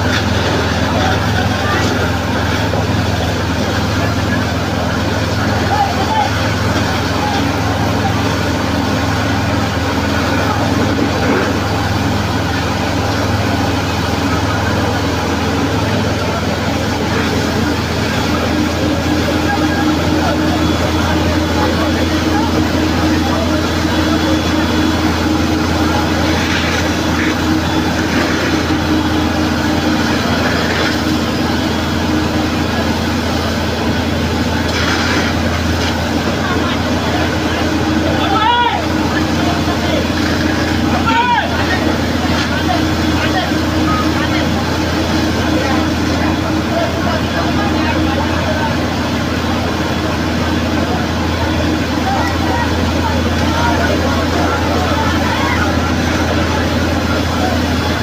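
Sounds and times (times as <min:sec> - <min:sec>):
crowd voices: 0:00.0 - 0:58.0
fire truck engine droning: 0:00.0 - 0:58.0
hose spraying water: 0:21.7 - 0:32.4, 0:33.4 - 0:38.1.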